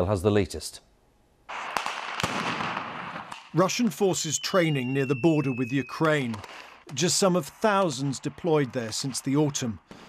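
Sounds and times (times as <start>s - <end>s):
sharp gunshots: 1.5s - 9.9s
gunfire crackling: 1.5s - 10.0s.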